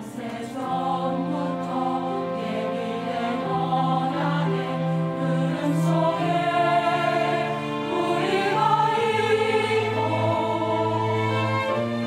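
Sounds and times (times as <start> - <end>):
choir singing sustained chords: 0.0 - 12.0.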